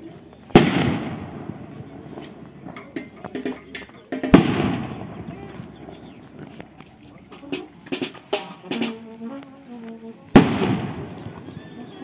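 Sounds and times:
people chattering: 0.0 - 12.0
loud firework bang with echo: 0.6 - 1.6, 4.3 - 5.3, 10.4 - 11.4.

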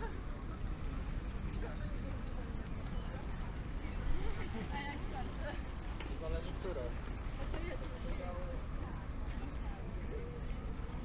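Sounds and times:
pedestrians conversation: 0.0 - 11.0.

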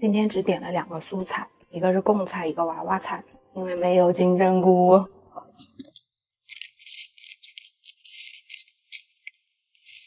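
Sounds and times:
person slurping and chewing: 6.5 - 10.0.

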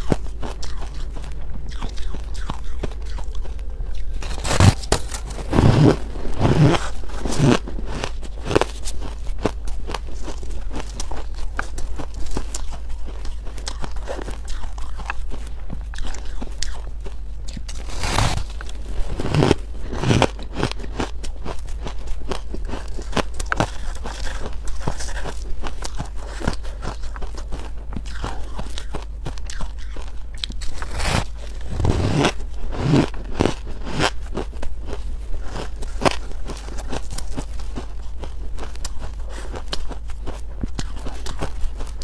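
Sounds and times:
soft crackling: 0.0 - 42.0
steady low hum: 0.0 - 42.0.

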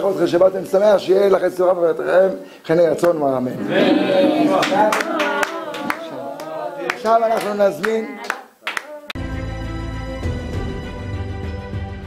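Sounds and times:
voices singing: 3.6 - 9.2
hands clapping in rhythm: 4.5 - 9.2.

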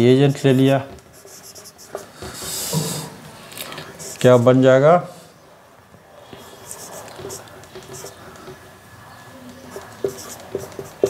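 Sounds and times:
high-pitched marker squeaking: 0.2 - 2.0, 6.4 - 8.2, 9.5 - 11.0
marker writing on whiteboard: 0.2 - 2.9, 6.3 - 8.6, 9.5 - 11.0.

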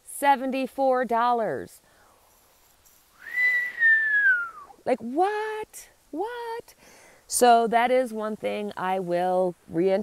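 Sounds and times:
woman whistling descending note: 3.2 - 4.8.

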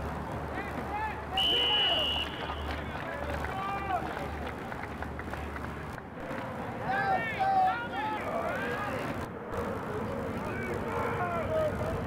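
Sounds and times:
players and spectators shouting: 0.5 - 4.2, 6.6 - 9.2, 10.2 - 12.0
referee's whistle blast: 1.4 - 2.6.

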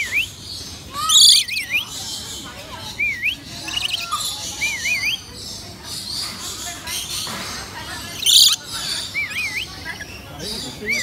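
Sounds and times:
wavering whistled bird calls: 0.0 - 7.3, 8.1 - 11.0
parrots chattering: 0.0 - 11.0.

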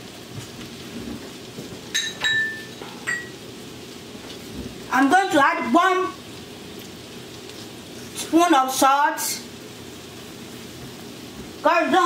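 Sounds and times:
butter sizzling in a frying pan: 0.0 - 12.0.

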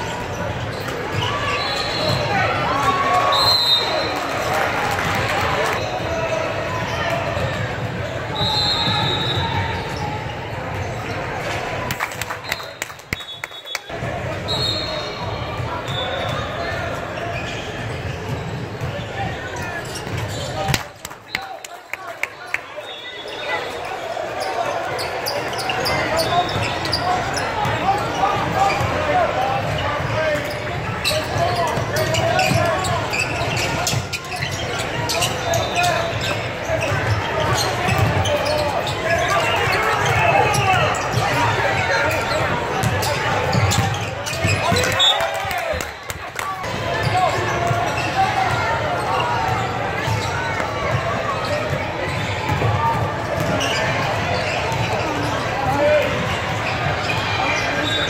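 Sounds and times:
chatter of people echoing: 0.0 - 12.9, 13.6 - 58.0.

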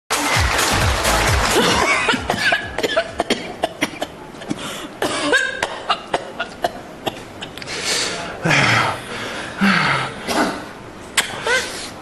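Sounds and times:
music: 0.1 - 2.8
man coughing hard: 1.5 - 7.6.

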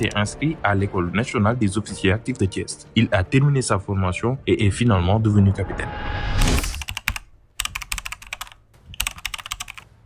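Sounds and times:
keyboard typing clicks: 6.4 - 9.9.

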